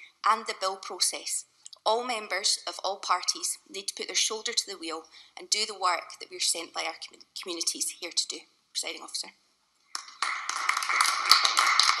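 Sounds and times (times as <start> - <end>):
small group applauding: 9.9 - 12.0.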